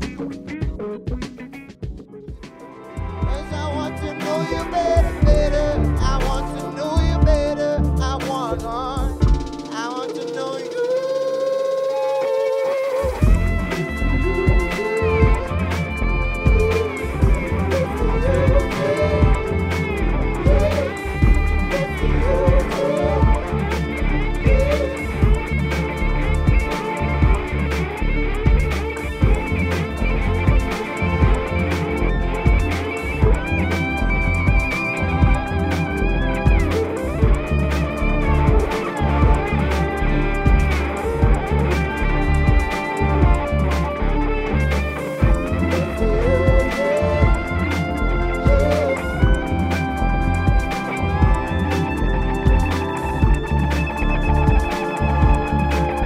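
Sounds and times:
kick drum beating: 0.0 - 3.5, 5.0 - 5.5, 7.0 - 7.5, 9.0 - 9.6, 13.2 - 13.6, 14.4 - 15.6, 16.4 - 17.5, 18.4 - 19.6, 20.5 - 21.6, 22.4 - 23.5, 24.5 - 25.6, 26.4 - 27.5, 28.5 - 29.6, 30.4 - 31.5, 32.5 - 33.6, 34.4 - 35.6, 36.4 - 37.6, 38.5 - 39.5, 40.4 - 41.6, 42.4 - 43.6, 45.2 - 45.6, 46.5 - 47.5, 48.5 - 51.6, 52.4 - 53.6, 54.5 - 55.7
wavering melodic line: 2.6 - 56.0
deep sustained bassline: 3.0 - 9.5, 13.1 - 56.0
electric cello: 12.7 - 56.0.

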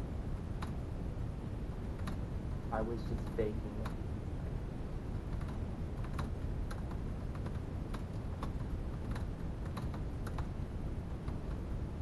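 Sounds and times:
low steady rumble: 0.0 - 12.0
laptop keyboard typing: 5.2 - 10.6.

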